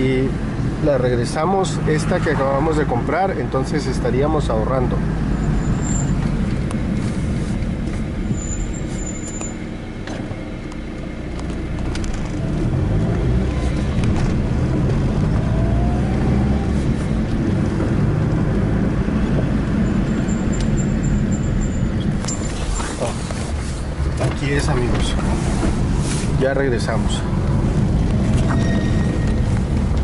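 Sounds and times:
car engine and road noise: 0.0 - 30.0.

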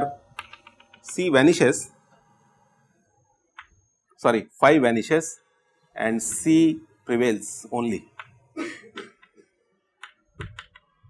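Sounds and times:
chalk tapping and scratching: 6.2 - 6.6.

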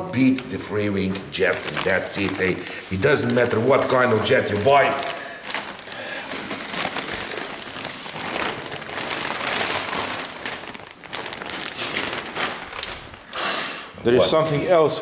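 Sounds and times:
plastic bag crinkling: 1.0 - 13.4.

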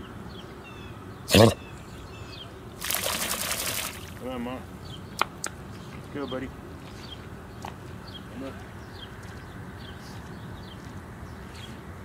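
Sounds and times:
dog shaking water from coat: 2.8 - 4.2.

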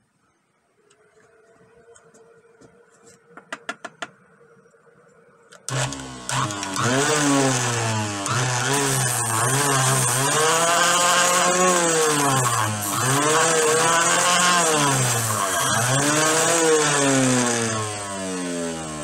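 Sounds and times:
disc sander running: 5.6 - 19.0.

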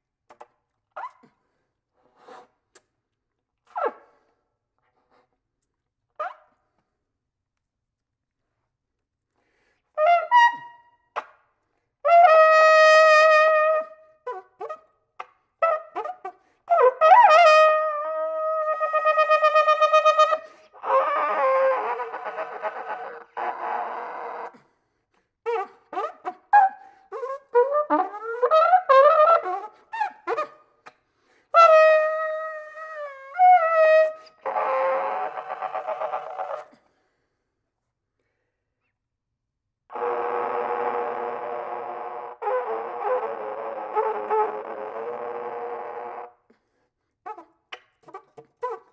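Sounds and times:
solo flugelhorn playing: 39.9 - 46.3.

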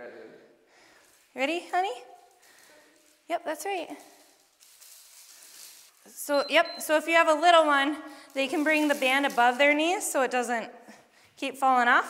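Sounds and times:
faint hiss: 3.9 - 6.2.

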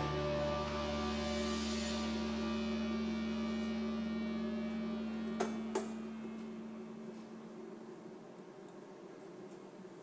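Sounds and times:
soundtrack music: 0.0 - 7.3
electrical hum: 0.0 - 10.0.

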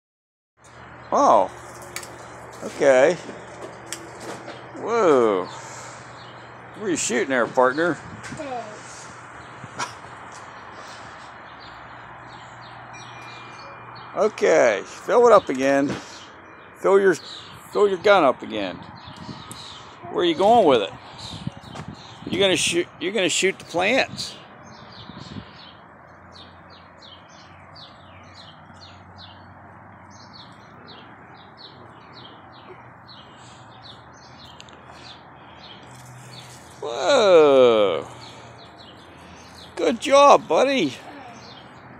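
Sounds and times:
bird chirps: 10.8 - 14.2.

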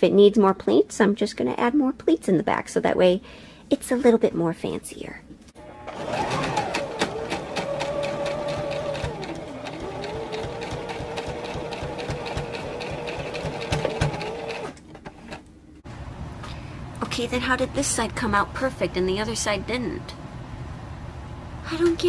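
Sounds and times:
sewing machine stitching: 5.6 - 15.4.

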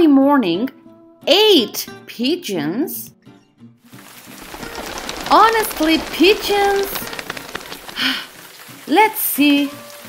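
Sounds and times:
rain pattering: 3.9 - 10.0.

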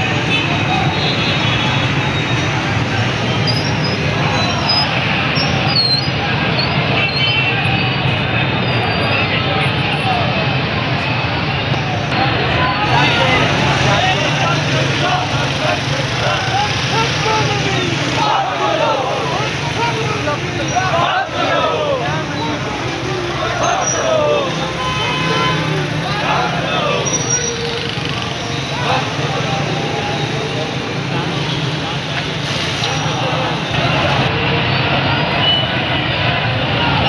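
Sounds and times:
crowd voices mingling: 0.0 - 37.0
motorcycle engines running: 11.9 - 24.7, 25.4 - 35.2.

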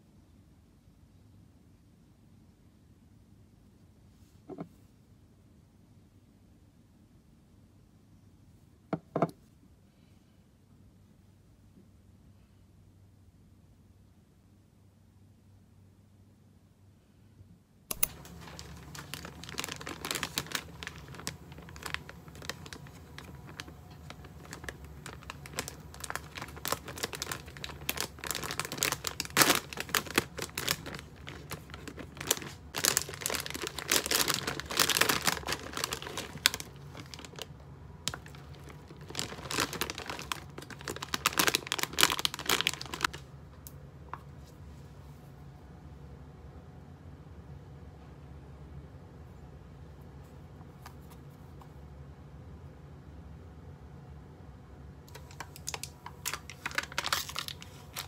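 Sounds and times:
plastic lid peeling crackles: 17.9 - 37.5, 38.1 - 43.2, 55.1 - 58.0
plastic bag crinkling: 17.9 - 43.2, 55.1 - 58.0.

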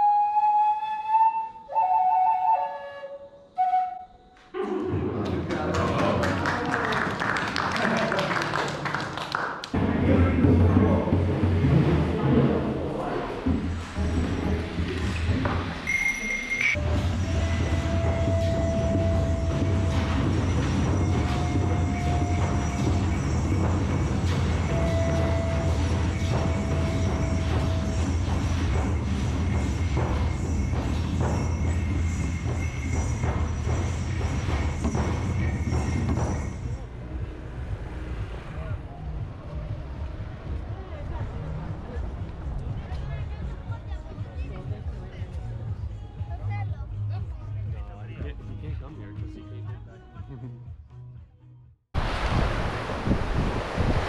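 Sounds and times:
pan flute long notes: 0.0 - 4.6, 16.8 - 29.0
small pipe notes: 15.9 - 36.8.

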